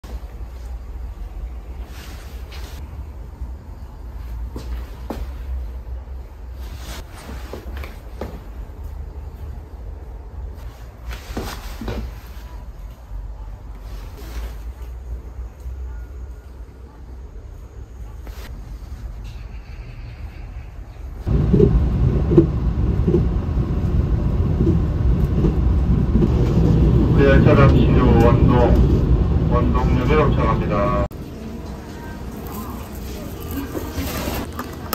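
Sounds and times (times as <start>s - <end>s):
train running rumble: 17.9s - 34.9s
onboard station announcement: 21.2s - 34.9s.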